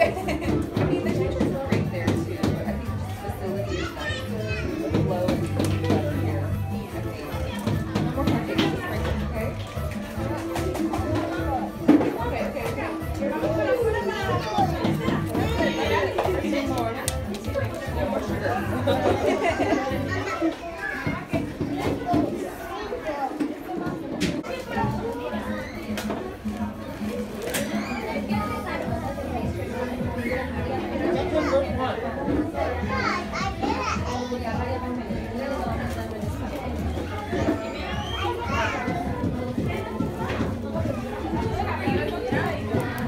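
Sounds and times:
background music: 0:00.0 - 0:20.5, 0:24.4 - 0:43.0
adults chattering: 0:00.0 - 0:43.0
children playing: 0:00.0 - 0:43.0.

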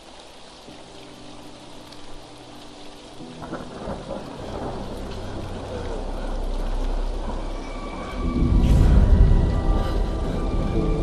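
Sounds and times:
rain: 0:00.0 - 0:11.0
thunder: 0:03.4 - 0:11.0.

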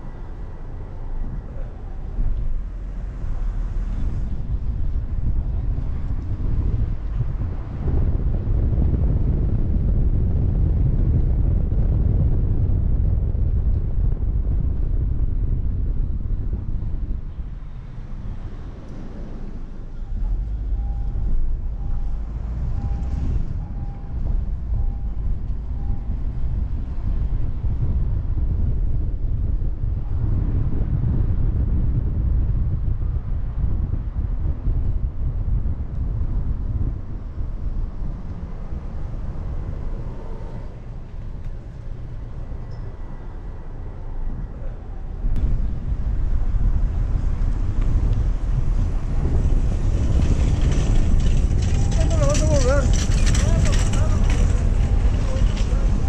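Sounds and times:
road noise: 0:00.0 - 0:56.0
wind rumble on microphone: 0:00.0 - 0:56.0.

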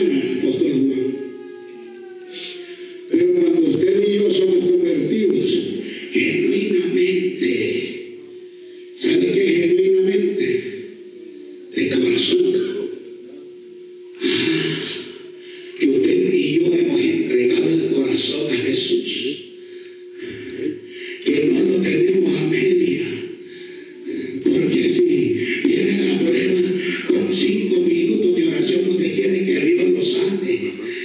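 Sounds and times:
man preaching through pa: 0:00.0 - 0:08.1, 0:09.0 - 0:10.9, 0:11.7 - 0:13.0, 0:15.8 - 0:19.5, 0:20.2 - 0:23.4, 0:24.0 - 0:31.0.

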